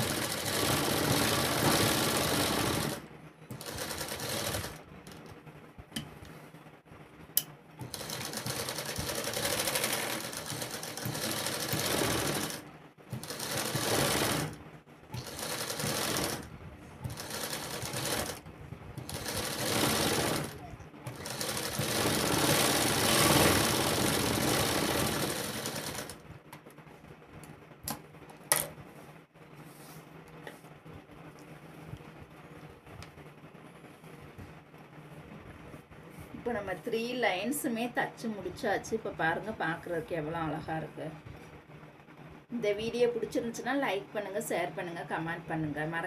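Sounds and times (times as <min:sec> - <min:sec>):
sewing machine stitching: 0:00.0 - 0:04.8, 0:07.8 - 0:18.4, 0:19.0 - 0:26.2.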